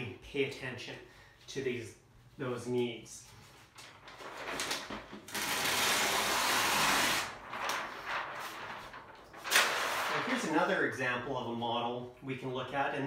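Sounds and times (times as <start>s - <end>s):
paper sheet rustling: 3.2s - 10.8s.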